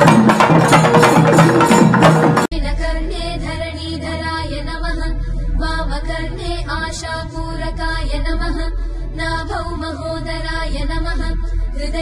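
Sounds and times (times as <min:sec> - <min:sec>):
steady low drone: 0:02.5 - 0:12.0.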